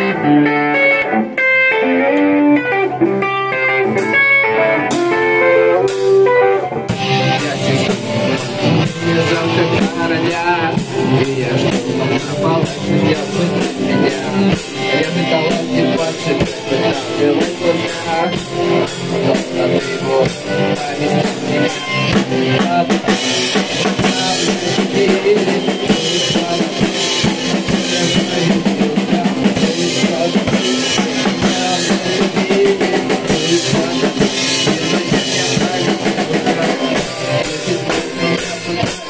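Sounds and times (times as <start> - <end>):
electric guitar riff: 0.0 - 39.0
drums and cymbals: 3.8 - 39.0.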